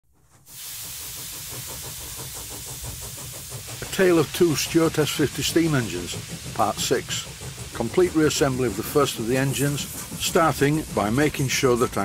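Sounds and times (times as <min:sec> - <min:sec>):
steam hissing: 0:00.2 - 0:12.0
faint fast rhythmic beat: 0:01.2 - 0:12.0.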